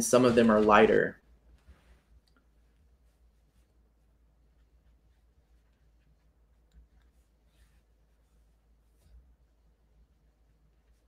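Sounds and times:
person speaking: 0.0 - 1.2.

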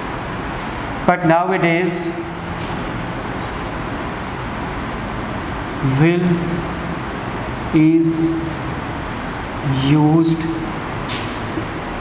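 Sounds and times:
steady hiss and rumble: 0.0 - 12.0.

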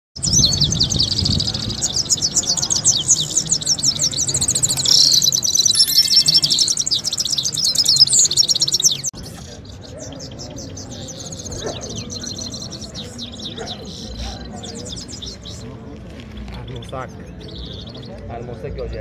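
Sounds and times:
goldfinches twittering: 0.2 - 9.1.

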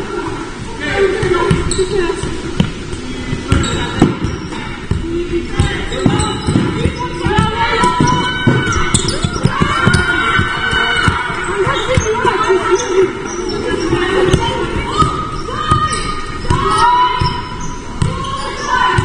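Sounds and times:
basketball bouncing on wooden court: 1.2 - 12.8, 13.8 - 19.0
players shouting: 5.0 - 19.0.

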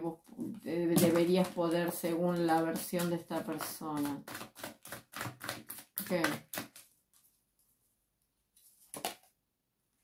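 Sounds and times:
woman speaking: 0.0 - 4.3, 6.0 - 6.5
tarot cards shuffling: 1.0 - 7.4.

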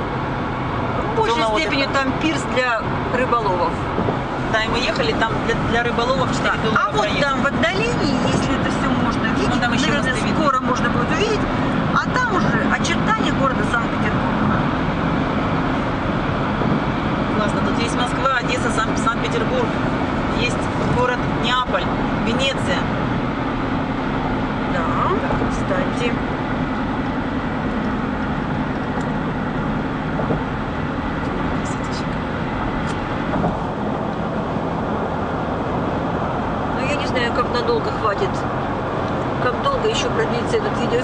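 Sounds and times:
car road and tyre noise: 0.0 - 41.0.

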